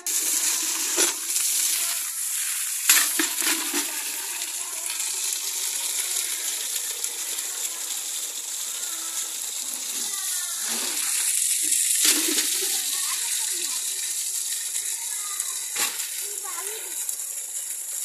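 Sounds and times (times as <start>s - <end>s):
water gushing into metal buckets: 0.0s - 18.0s.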